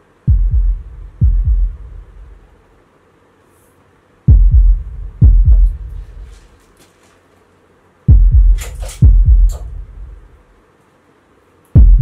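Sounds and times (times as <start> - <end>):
heartbeat double thumps: 0.3 - 2.5, 4.3 - 6.3, 8.1 - 10.3, 11.8 - 12.0.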